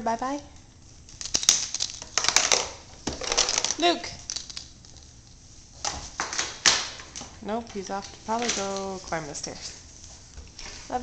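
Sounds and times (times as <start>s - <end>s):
plastic toy rolling on wood floor: 1.7s - 5.1s.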